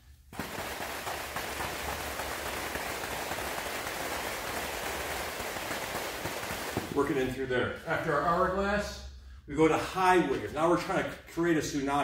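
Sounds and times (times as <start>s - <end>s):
battle ropes slapping on turf: 0.3s - 7.3s.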